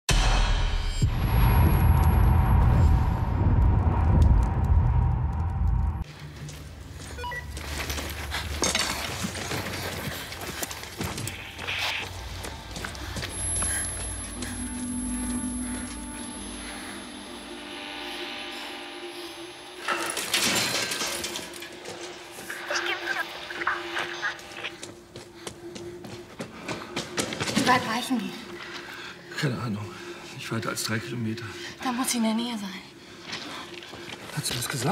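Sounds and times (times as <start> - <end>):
music: 0.1 - 34.9
loud deep rumble: 0.3 - 6.1.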